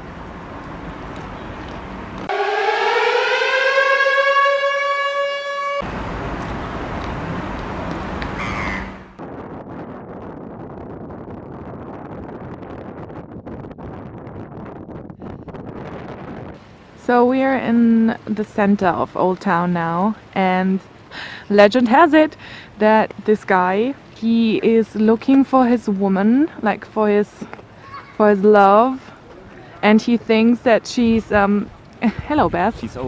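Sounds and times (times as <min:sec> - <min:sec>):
siren winding up: 0:02.3 - 0:05.8
wind rumbling on microphone: 0:05.8 - 0:33.0.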